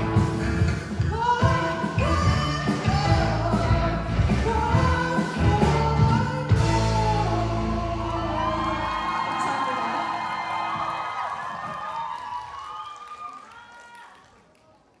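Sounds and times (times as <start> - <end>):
audience cheering and whooping: 7.8 - 14.4.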